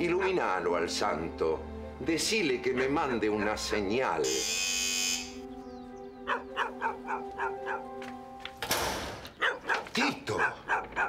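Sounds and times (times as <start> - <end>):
dog barking: 0.0 - 0.6, 2.7 - 3.8, 6.3 - 7.9, 9.4 - 11.0
held music chord: 3.8 - 8.6.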